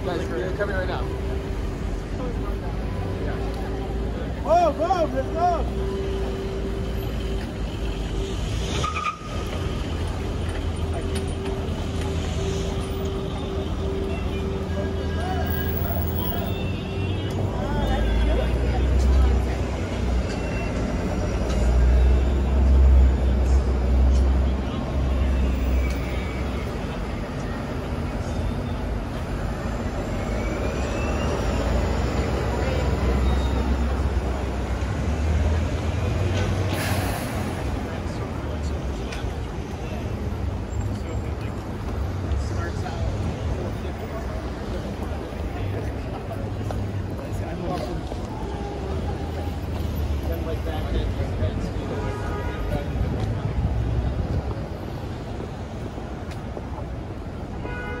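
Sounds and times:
passers-by talking: 0.0s - 57.7s
bus passing: 0.0s - 58.0s
rumble of traffic: 0.0s - 58.0s.

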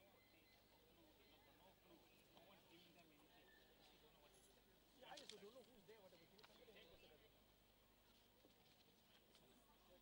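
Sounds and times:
faint murmuring voices: 0.0s - 10.0s.

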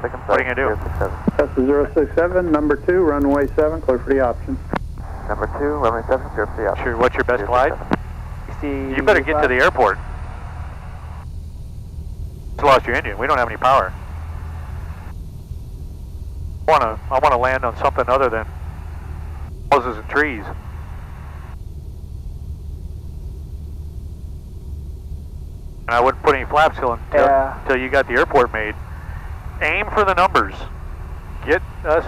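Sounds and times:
steady hiss: 0.0s - 15.2s, 24.7s - 32.0s
aircraft engine droning: 0.0s - 32.0s
airflow noise: 0.0s - 32.0s.

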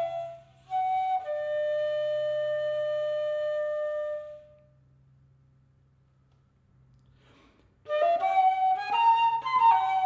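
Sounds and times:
flute holding long note: 0.0s - 4.7s, 7.9s - 10.0s.

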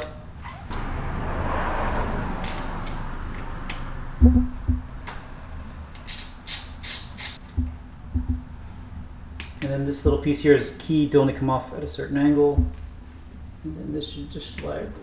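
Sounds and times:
wrench clicking: 5.0s - 7.6s.

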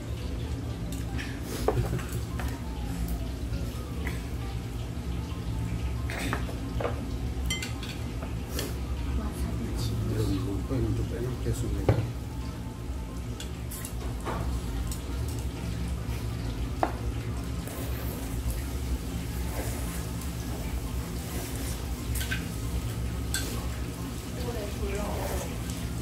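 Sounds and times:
low background hum: 0.0s - 26.0s.

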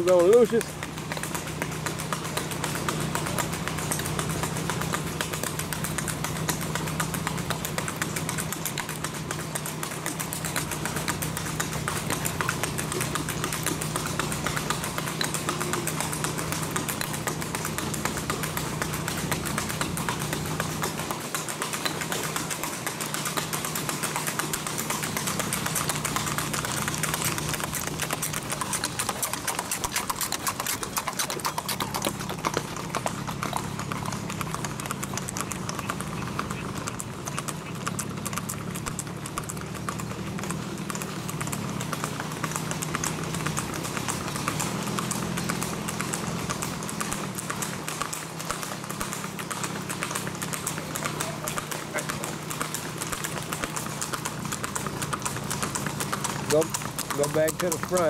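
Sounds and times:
horse hooves clip-clopping on asphalt: 0.0s - 58.0s
low engine hum: 0.0s - 58.0s.

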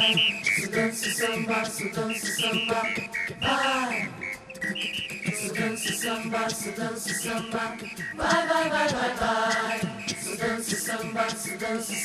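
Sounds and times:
a cappella choir singing: 0.0s - 12.0s
high whistle-like toots: 0.0s - 12.0s.

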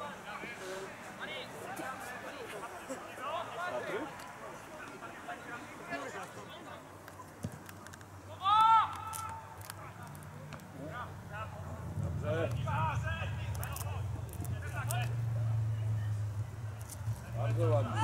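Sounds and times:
players shouting outdoors: 8.2s - 9.6s, 17.7s - 18.0s.

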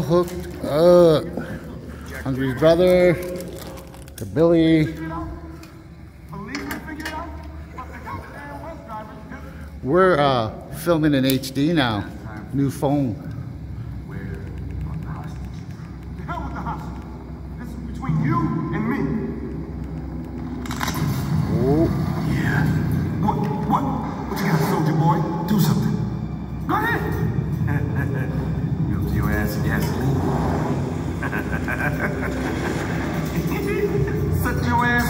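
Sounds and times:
film soundtrack from television: 0.0s - 35.0s
steady low hum: 0.0s - 35.0s.

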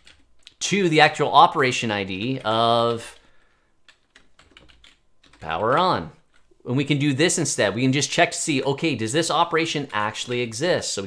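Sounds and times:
computer keyboard typing: 0.0s - 6.5s, 8.9s - 10.6s.

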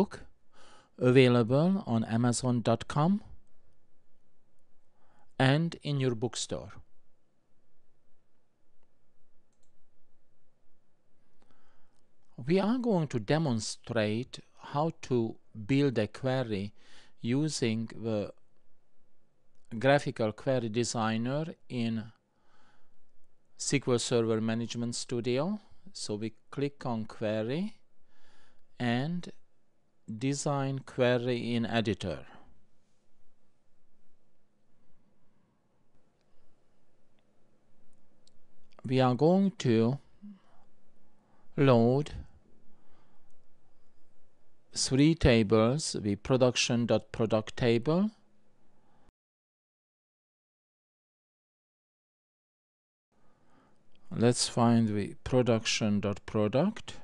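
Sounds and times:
man speaking: 0.0s - 0.3s, 1.0s - 3.4s, 5.4s - 6.9s, 12.4s - 18.4s, 19.7s - 22.2s, 23.6s - 27.8s, 28.8s - 29.4s, 30.1s - 32.5s, 38.8s - 40.4s, 41.5s - 42.3s, 44.7s - 48.2s, 54.1s - 57.0s
low background hiss: 0.0s - 49.1s, 53.2s - 57.0s.

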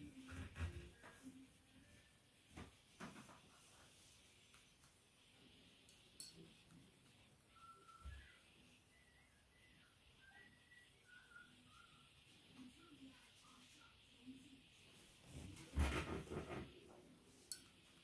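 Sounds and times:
faint short whistled notes: 7.5s - 12.1s.

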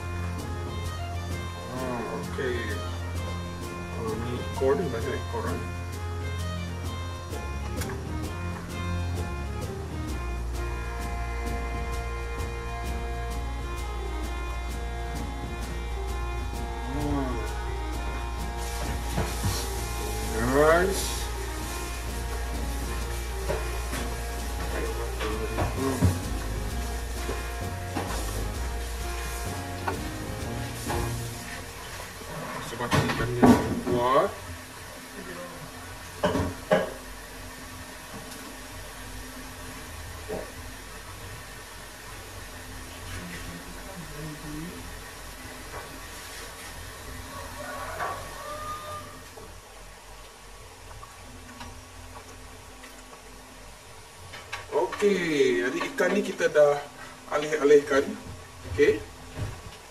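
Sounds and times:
background music: 0.0s - 38.0s
indistinct voices: 16.8s - 17.9s.

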